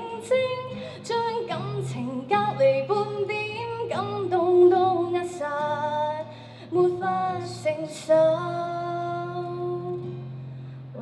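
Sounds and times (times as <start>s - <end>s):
woman singing: 0.0s - 10.3s
acoustic guitar: 0.0s - 11.0s.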